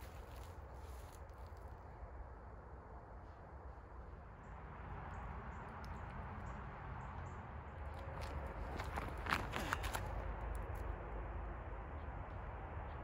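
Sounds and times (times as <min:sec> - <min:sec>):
footsteps through dry leaves: 0:00.0 - 0:01.6, 0:08.1 - 0:10.1.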